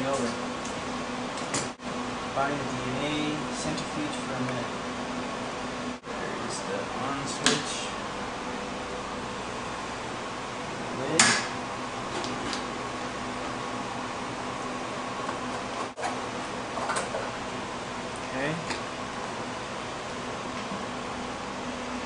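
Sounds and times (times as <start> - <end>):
room hum: 0.0 - 22.0.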